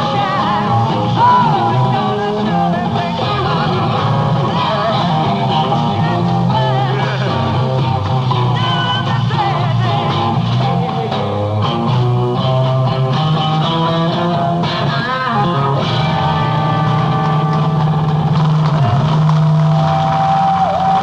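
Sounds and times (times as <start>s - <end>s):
bent electric guitar notes: 0.0s - 21.0s
rock band playing: 0.0s - 21.0s.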